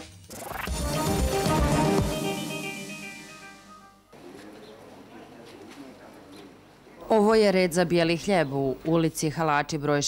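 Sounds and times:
faint street ambience: 0:03.5 - 0:10.0.

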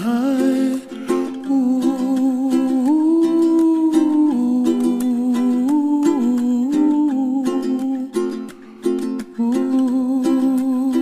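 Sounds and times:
ukulele strumming: 0:00.0 - 0:11.0.

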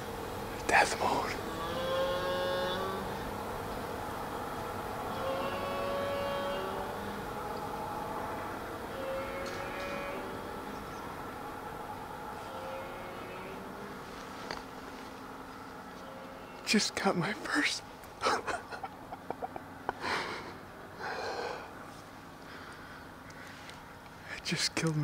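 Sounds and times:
bear moaning: 0:08.0 - 0:10.8.

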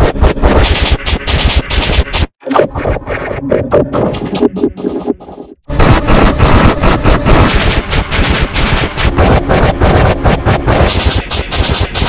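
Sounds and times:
distorted electronic rattling stutter: 0:00.0 - 0:12.0.

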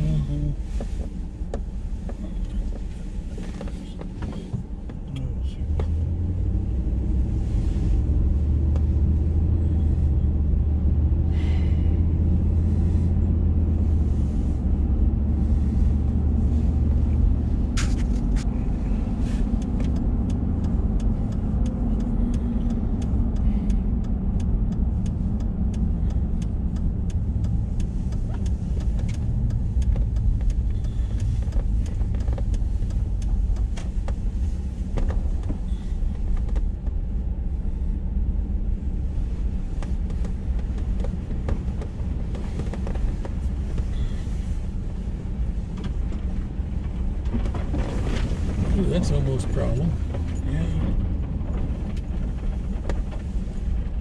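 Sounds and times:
deep hum: 0:00.0 - 0:54.0
vehicle engine and tyres rumbling: 0:00.0 - 0:54.0
light sharp clicks and ticks: 0:14.0 - 0:37.5, 0:39.0 - 0:54.0.

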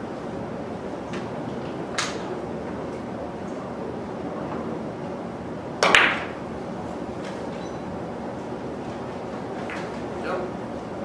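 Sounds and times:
cue striking ball: 0:05.8 - 0:06.4.

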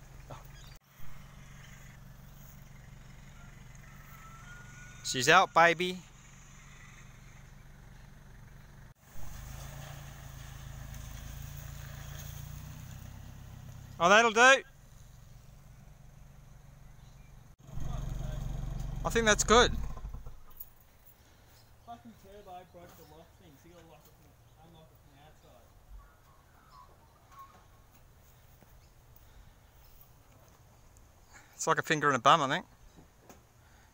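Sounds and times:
vehicle engine running at low revs: 0:00.0 - 0:05.0, 0:06.0 - 0:14.0, 0:14.7 - 0:20.7.

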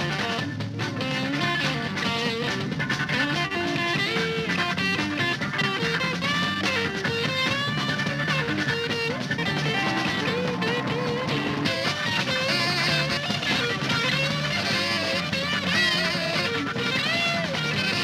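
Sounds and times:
electric guitar lead: 0:00.0 - 0:18.0
rock band music: 0:00.0 - 0:18.0.

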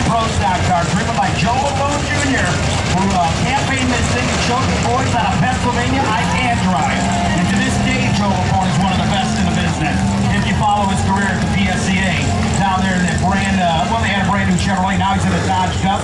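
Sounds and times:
announcer over public address: 0:00.0 - 0:16.0
race car engines idling: 0:00.0 - 0:16.0.

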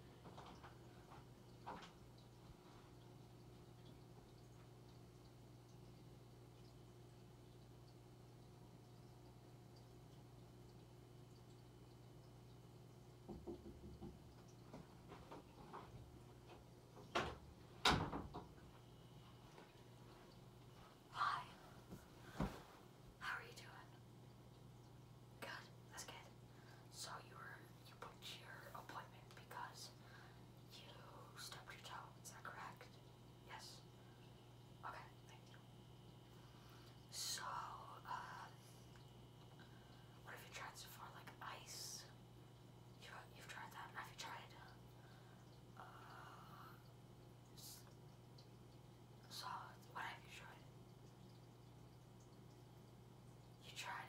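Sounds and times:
steady low hum: 0:00.0 - 0:54.0
person whispering: 0:21.1 - 0:21.7, 0:23.2 - 0:24.0, 0:25.4 - 0:30.0, 0:30.7 - 0:33.8, 0:34.8 - 0:35.6, 0:37.1 - 0:38.6, 0:40.2 - 0:42.1, 0:43.0 - 0:44.8, 0:47.5 - 0:47.9, 0:49.3 - 0:50.7, 0:53.6 - 0:54.0.

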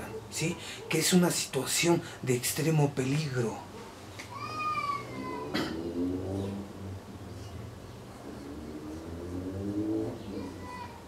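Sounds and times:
cat meowing: 0:04.3 - 0:05.6.

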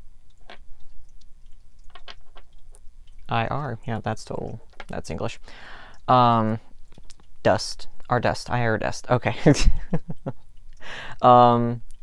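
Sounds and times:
letter dice clicking on wood: 0:01.9 - 0:02.5.

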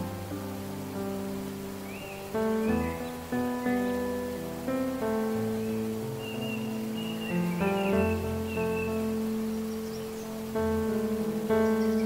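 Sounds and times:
gentle relaxation music: 0:00.0 - 0:12.0
soft water-like rushing: 0:00.0 - 0:12.0.

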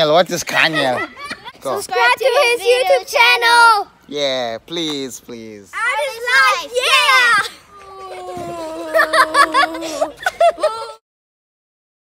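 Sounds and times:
children shouting: 0:05.8 - 0:11.0.

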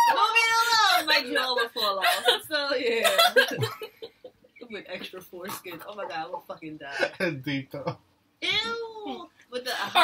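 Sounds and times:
excited talking: 0:00.0 - 0:03.7.

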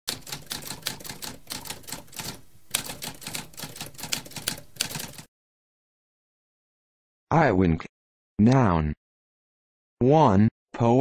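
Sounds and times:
typewriter typing: 0:00.1 - 0:05.3.

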